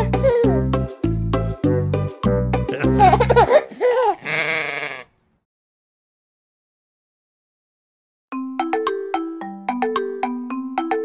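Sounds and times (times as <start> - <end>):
sheep bleating: 4.2 - 5.2.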